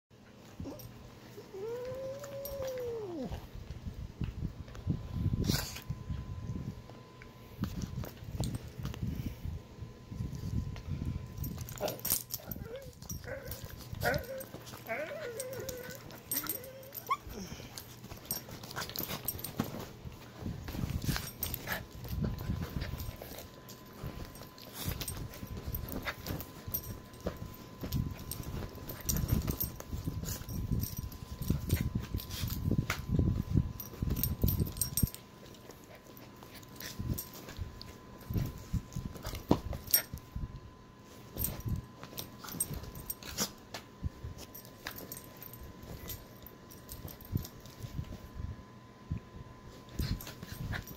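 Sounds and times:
small dog whimpering and whining: 1.4 - 3.5, 12.4 - 17.7
scuffling and rustling on bedding: 7.5 - 40.4.

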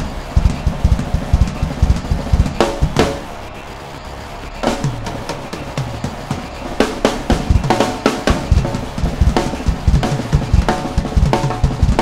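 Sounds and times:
rapid bass drum strokes: 0.0 - 3.3, 4.6 - 12.0
faint sustained backing tones: 0.0 - 12.0.

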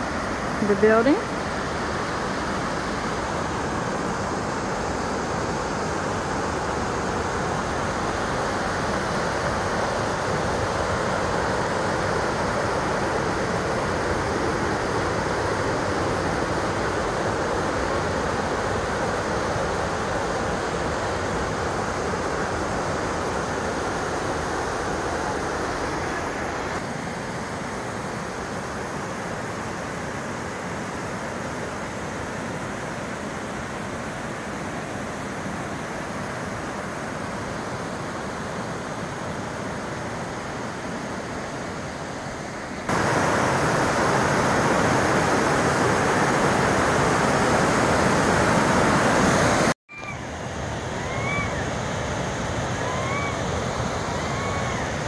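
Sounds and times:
waterfall rushing over rocks: 0.0 - 55.0.

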